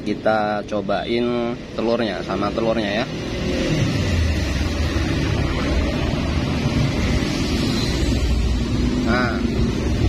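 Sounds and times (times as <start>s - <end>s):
road traffic rumble: 0.0s - 10.0s.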